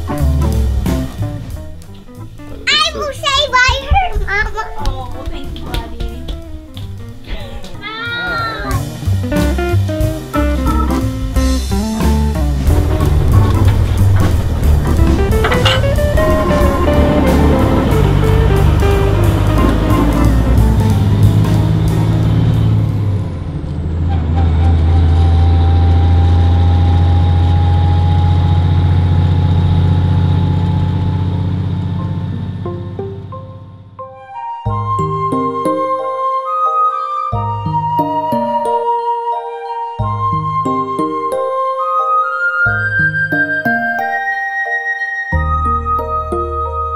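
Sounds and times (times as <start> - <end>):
background music: 0.0 - 24.1, 31.9 - 46.9
truck engine drone: 8.8 - 34.0.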